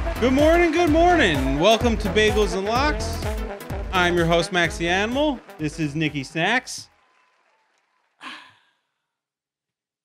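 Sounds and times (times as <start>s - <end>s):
person exhaling: 8.2s - 8.8s.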